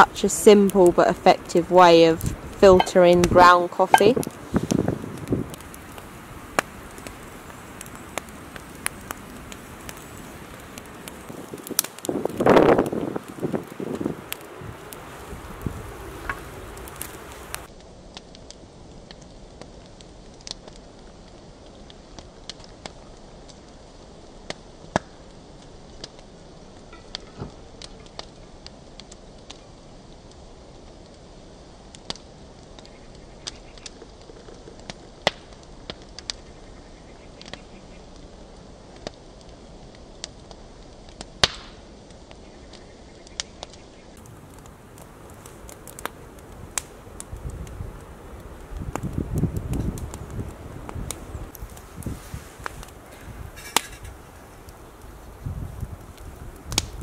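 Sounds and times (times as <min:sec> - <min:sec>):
low hiss: 0:00.0 - 0:40.2
campfire crackling and popping: 0:00.0 - 0:57.0
small ticks: 0:32.0 - 0:36.5.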